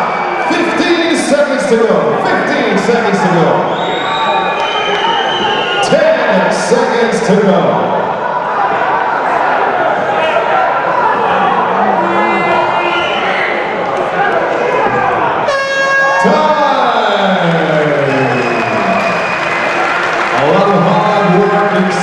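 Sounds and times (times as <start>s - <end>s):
crowd shouting and cheering: 0.0s - 22.0s
short horn blast: 15.5s - 17.2s.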